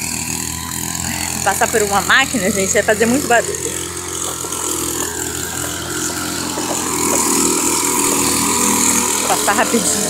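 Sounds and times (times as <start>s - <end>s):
engine-driven machine droning: 0.0s - 10.0s.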